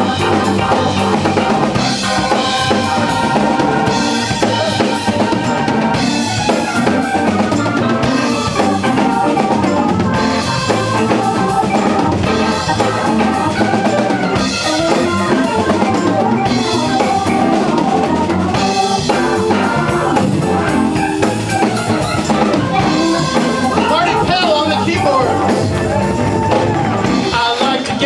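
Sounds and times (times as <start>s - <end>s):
bass guitar: 0.0s - 28.0s
drum kit: 0.0s - 28.0s
keyboard: 0.0s - 28.0s.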